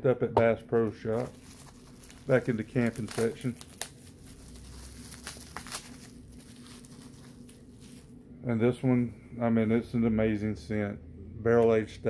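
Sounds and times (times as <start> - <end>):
low room hum: 0.0 - 12.0
packaging rustling: 0.8 - 8.2.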